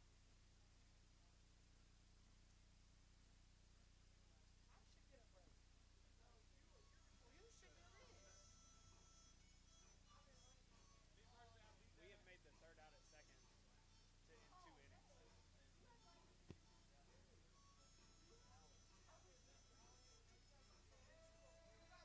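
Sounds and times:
faint distant voices: 0:04.2 - 0:22.0.

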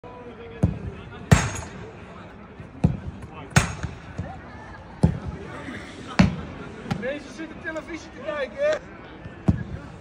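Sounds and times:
footballs kicked with thuds: 0:02.6 - 0:04.4, 0:05.0 - 0:05.4.

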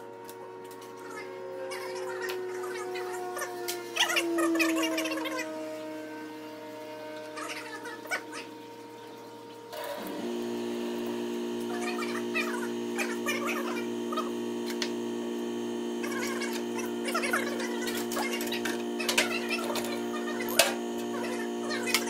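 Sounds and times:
background music sustained tones: 0:00.0 - 0:09.8.

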